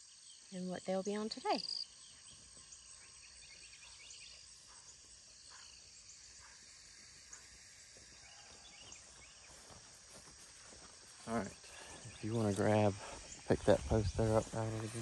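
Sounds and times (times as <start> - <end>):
crickets chirping: 0.0 - 15.0.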